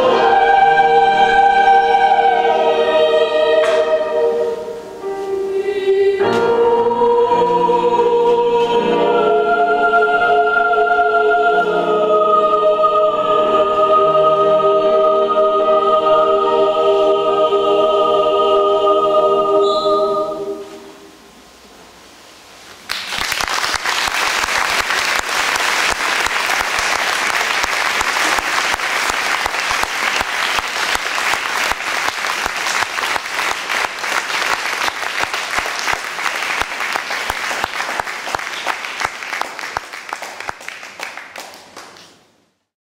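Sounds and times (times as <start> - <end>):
choir chord echoing in church: 0.0 - 21.2, 24.7 - 41.2
audience applause: 22.9 - 42.2.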